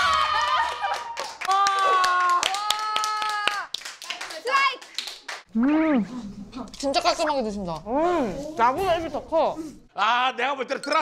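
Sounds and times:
people clapping: 0.0 - 5.5.

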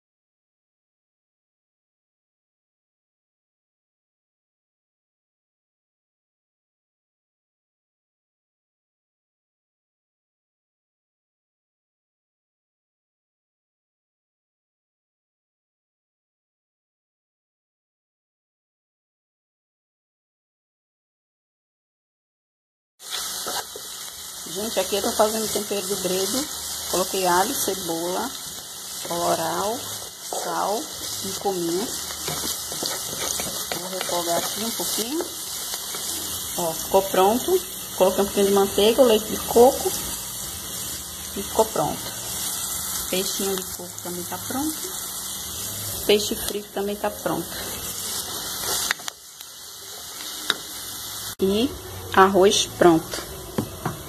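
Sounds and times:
vegetables sizzling in oil: 23.0 - 54.0
wooden spoon stirring: 28.4 - 36.4.

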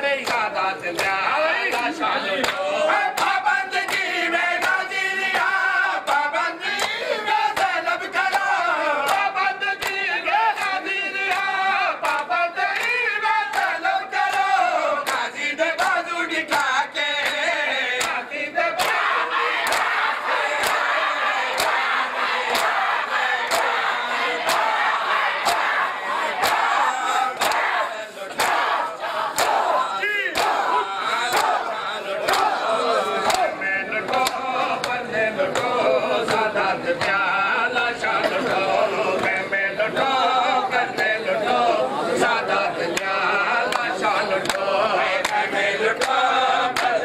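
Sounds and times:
crowd chanting and shouting: 0.0 - 47.0.

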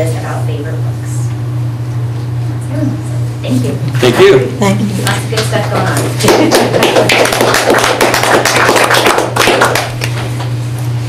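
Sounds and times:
audience applauding: 6.2 - 10.2.

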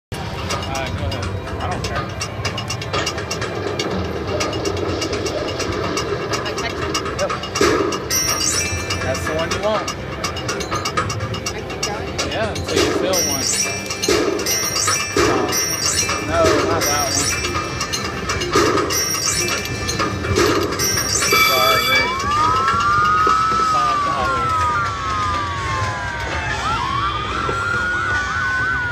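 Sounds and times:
slot machine jingles and clicks: 0.2 - 23.2
slot machine bonus sound burst: 0.2 - 24.8
siren-like whistling swoops: 21.0 - 28.9.

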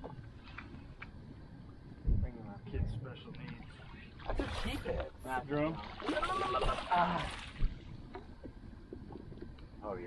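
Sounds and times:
wind rumble on microphone: 0.0 - 3.4, 6.6 - 10.0.

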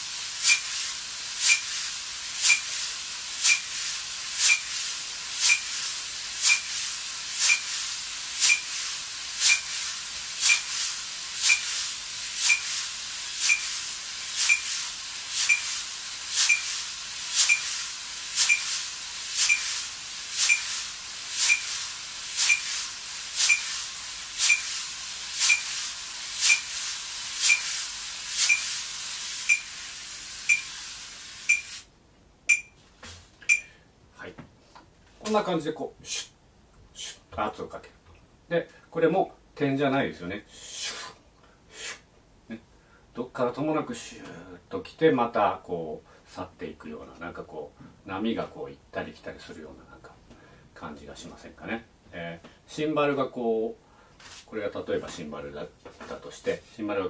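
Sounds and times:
wire brushes swishing on drum head: 0.4 - 8.8, 9.4 - 27.8, 28.4 - 29.7
metronome clicking: 17.4 - 17.7, 20.4 - 20.7, 29.5 - 29.7, 30.5 - 30.7, 31.5 - 31.7, 32.5 - 32.7, 33.5 - 33.7.

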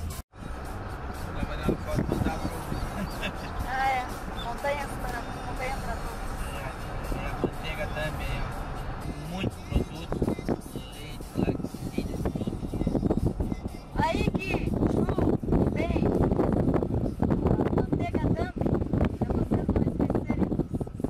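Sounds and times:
road and engine rumble: 0.0 - 21.0.

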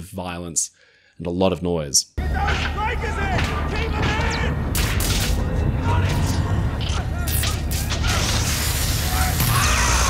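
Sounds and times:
people shouting and screaming: 2.2 - 4.6, 5.6 - 10.0.

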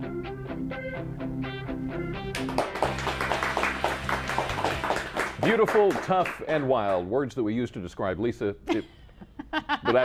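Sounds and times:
picked guitar-like figure: 0.0 - 2.8.

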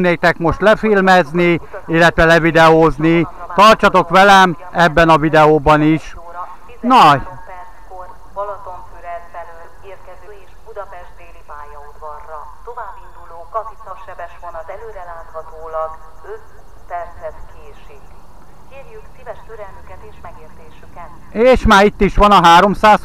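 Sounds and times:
faint low steady hum: 0.0 - 23.0.

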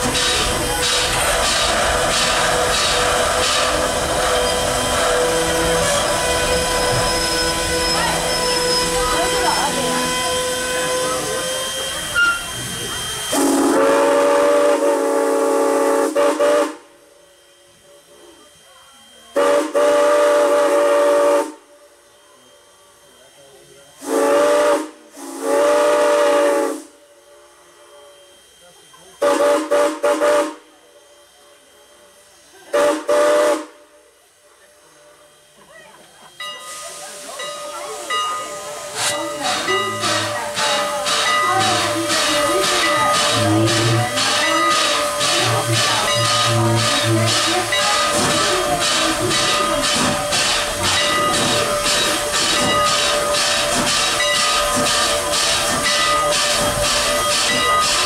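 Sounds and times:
steam whistle blasts: 0.0 - 16.9, 19.3 - 21.7, 24.0 - 27.0, 29.2 - 30.7, 32.7 - 33.9, 38.6 - 58.0
steam locomotive hissing: 0.0 - 58.0.

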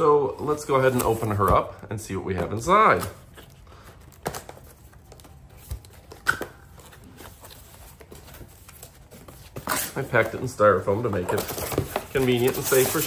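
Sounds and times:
cardboard scraping and knocking: 9.2 - 13.0.

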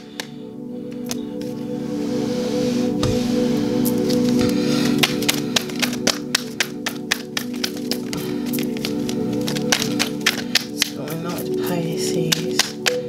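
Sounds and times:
ambient background music: 0.0 - 13.0
cards shuffling: 4.9 - 11.6, 12.2 - 13.0.

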